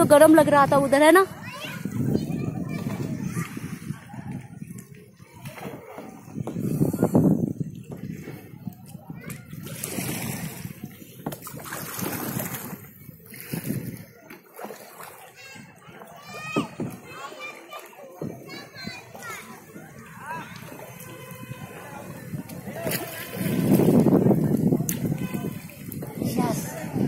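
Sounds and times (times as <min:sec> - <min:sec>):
woman speaking: 0:00.0 - 0:01.3
faint children's voices: 0:00.0 - 0:27.0
paddle strokes splashing in water: 0:00.7 - 0:27.0.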